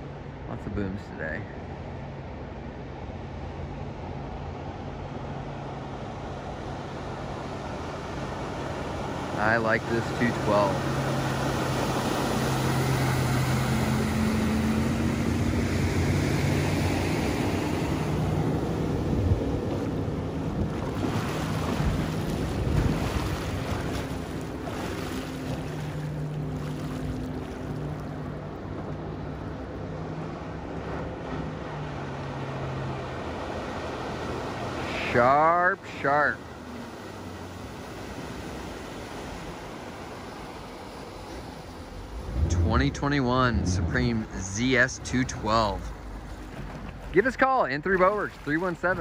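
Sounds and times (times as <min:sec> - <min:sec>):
boat engine running: 0:03.7 - 0:35.0, 0:35.9 - 0:49.0
water spray rushing off hull: 0:06.6 - 0:27.9
wind on microphone: 0:13.4 - 0:26.0.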